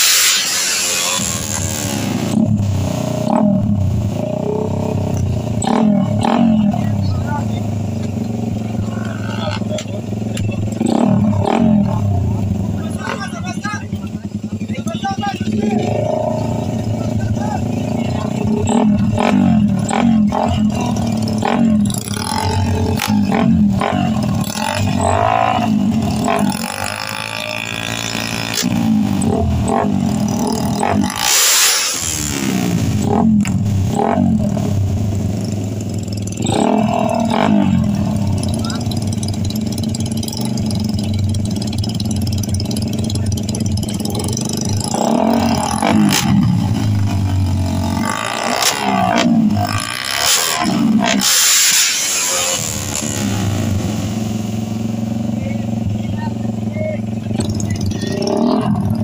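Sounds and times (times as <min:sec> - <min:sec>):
motorcycles revving: 0:00.0 - 0:59.0
people talking: 0:00.5 - 0:01.9, 0:04.2 - 0:31.2, 0:36.5 - 0:39.1, 0:42.8 - 0:46.6, 0:55.3 - 0:59.0.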